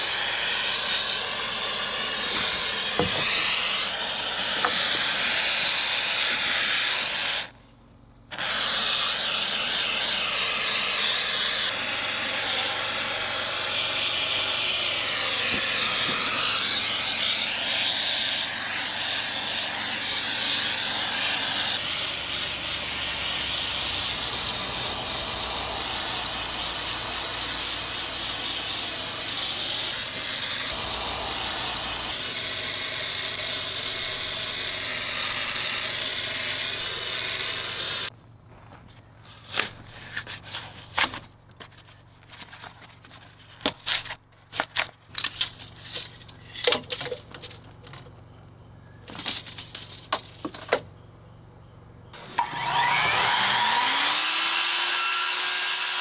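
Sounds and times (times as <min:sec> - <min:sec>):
spray foam hissing from gun: 0:00.0 - 0:07.5, 0:08.3 - 0:38.1.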